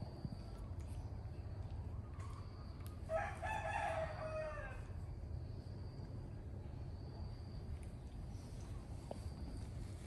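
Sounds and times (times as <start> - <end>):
rooster crowing: 3.1 - 4.9.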